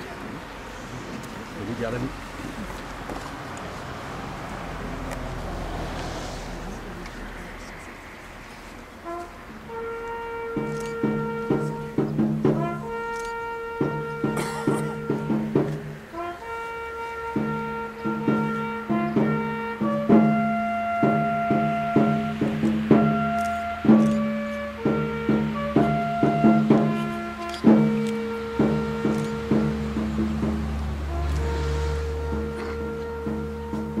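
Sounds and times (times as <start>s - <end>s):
brass-led wind band playing: 8.4s - 34.0s.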